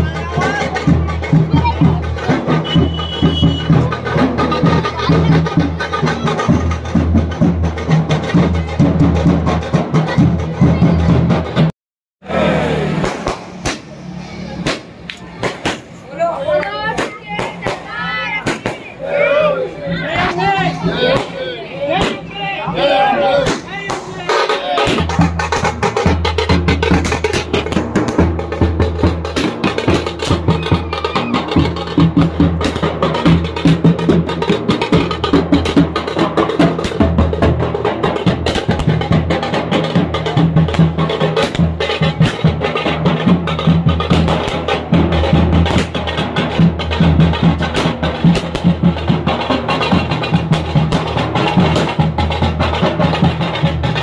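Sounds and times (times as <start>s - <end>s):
procession drums playing fast: 0.0s - 11.7s, 20.1s - 54.0s
crowd voices: 0.0s - 54.0s.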